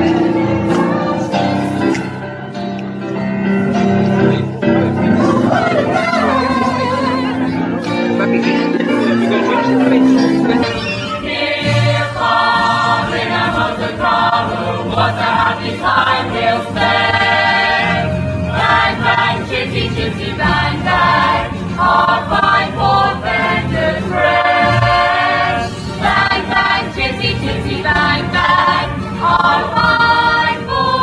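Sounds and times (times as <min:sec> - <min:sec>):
orchestral backing: 0:00.0 - 0:31.0
chorus singing: 0:05.0 - 0:31.0.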